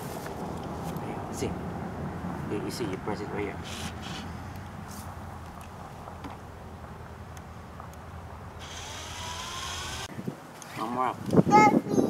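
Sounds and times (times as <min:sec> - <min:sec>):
low steady rumble: 0:00.0 - 0:10.1
cordless drill whining: 0:08.6 - 0:10.1.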